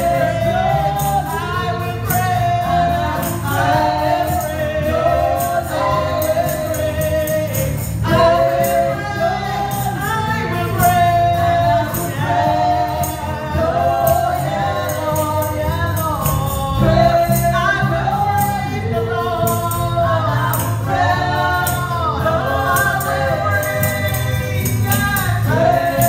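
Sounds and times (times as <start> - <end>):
band with guitars bass and drums: 0.0 - 26.0
women singing gospel: 0.0 - 26.0.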